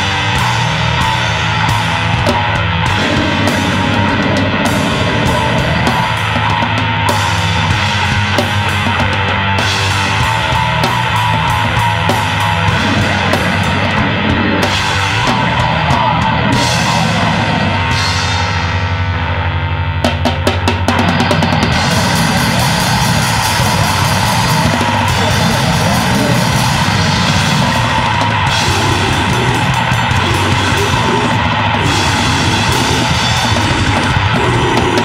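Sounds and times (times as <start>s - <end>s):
grindcore band playing: 0.0s - 35.0s
drum hits: 20.0s - 35.0s.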